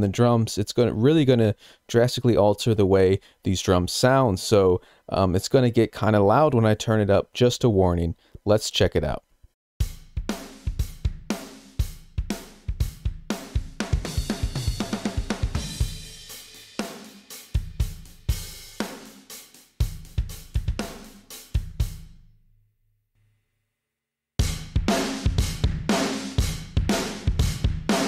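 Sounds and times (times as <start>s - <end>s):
rock drum kit beat: 9.8s - 22.2s, 24.4s - 28.0s.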